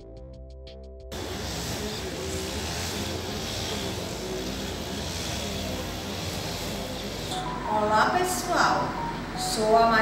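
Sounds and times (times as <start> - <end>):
even hiss: 1.1 - 7.5.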